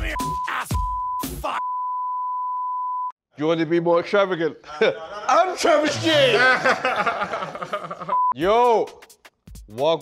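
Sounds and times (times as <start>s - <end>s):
censor beep tone: 0.0s - 3.2s
man swearing: 5.3s - 6.7s.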